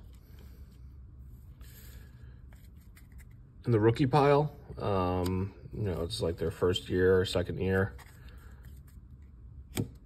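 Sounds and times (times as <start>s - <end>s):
cards rustling: 0.0s - 3.5s, 6.0s - 10.0s.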